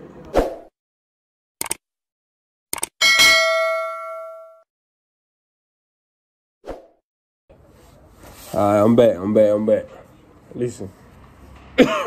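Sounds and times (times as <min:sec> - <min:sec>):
notification bell ding: 0:03.0 - 0:04.6.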